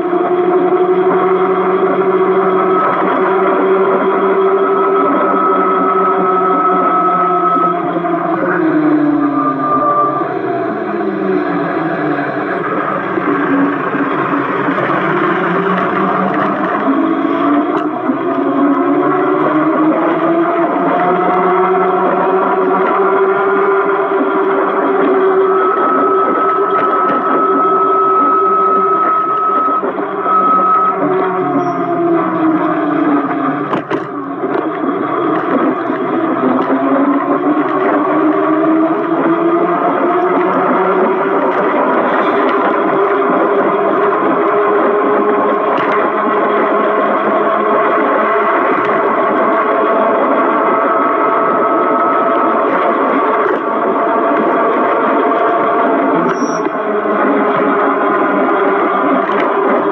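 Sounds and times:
electric bike motor whining: 0.0 - 59.9
road noise: 0.0 - 59.9
steady high tone: 1.6 - 35.1.

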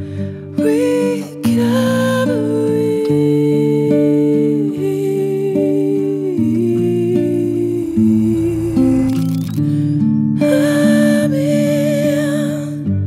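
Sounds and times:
rising sweep: 6.6 - 10.1.

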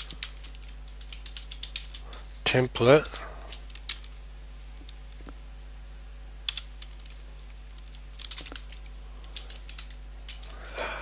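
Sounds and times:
keyboard typing: 0.0 - 2.1, 6.5 - 10.7.

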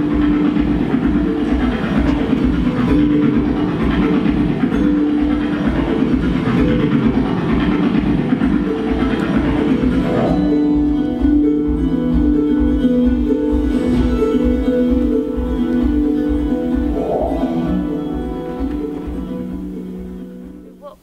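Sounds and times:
low pulsing beat: 0.0 - 20.8
long held notes: 0.0 - 20.9.

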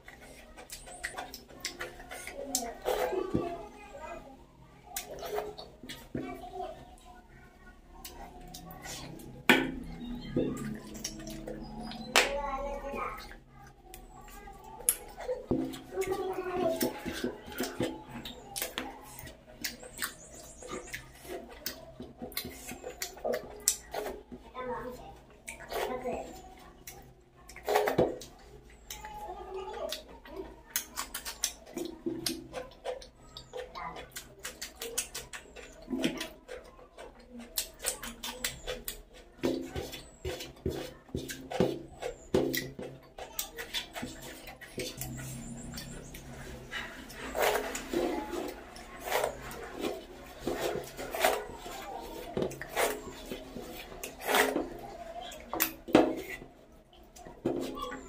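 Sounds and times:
wet chewing and lip smacking: 0.0 - 2.9, 29.8 - 58.0
fingers squishing food: 4.8 - 58.0.

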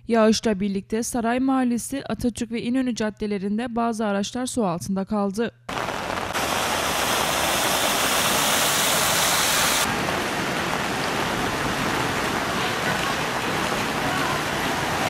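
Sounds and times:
heavy rain: 5.7 - 15.0
running floodwater: 5.8 - 15.0.

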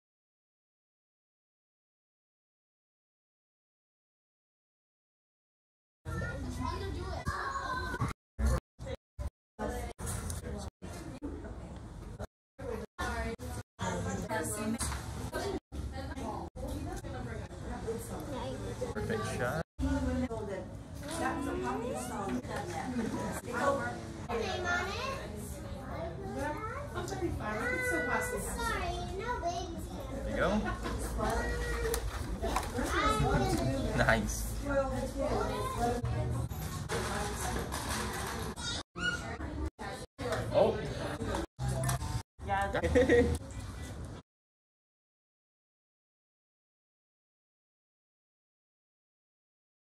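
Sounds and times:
children chattering and calling out: 6.1 - 9.0, 16.2 - 42.2.

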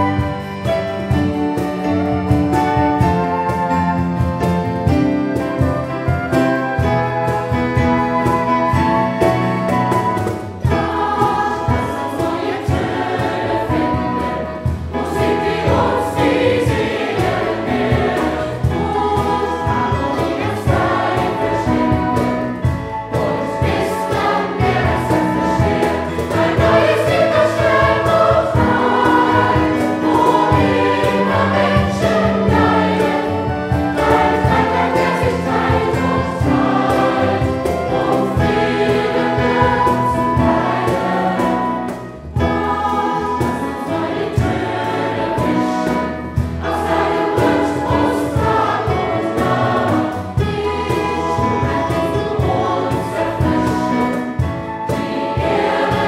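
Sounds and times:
mixed choir singing: 4.8 - 56.0.

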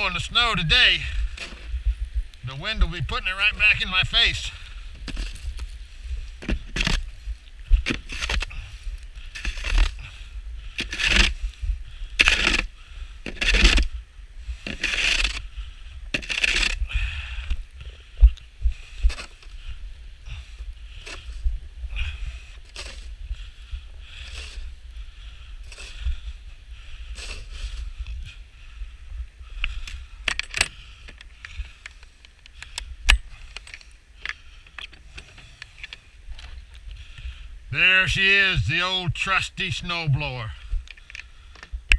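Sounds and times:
snow shovel scraping snow: 0.0 - 1.7, 3.5 - 7.3, 9.3 - 10.1, 10.8 - 11.5, 13.3 - 13.9, 14.6 - 15.5, 16.2 - 16.8, 22.6 - 23.1, 27.1 - 27.9
wind rumble on microphone: 0.0 - 31.8.

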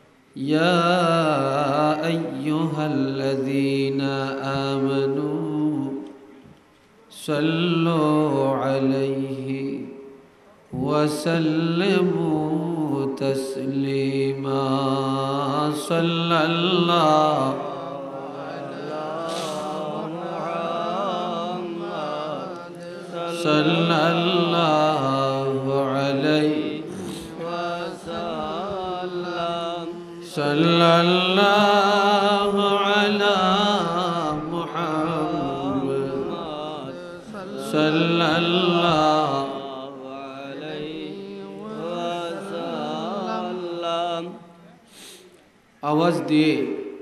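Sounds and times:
melodic chanting: 0.4 - 6.4, 7.1 - 45.0.

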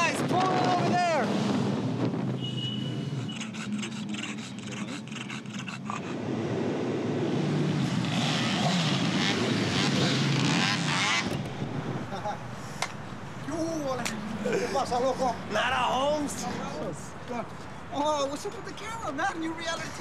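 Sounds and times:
street noise hiss: 0.0 - 20.0
car engine running: 10.9 - 15.8.

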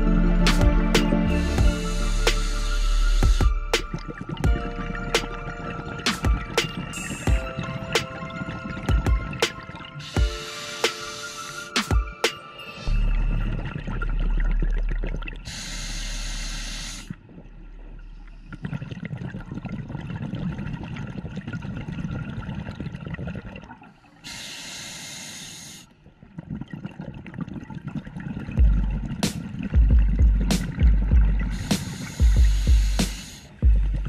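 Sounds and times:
exhaled air bubbling: 0.0 - 34.0
hissing regulator inhalation: 1.0 - 3.7, 9.9 - 12.0, 15.5 - 17.2, 24.2 - 26.0, 31.4 - 33.6.

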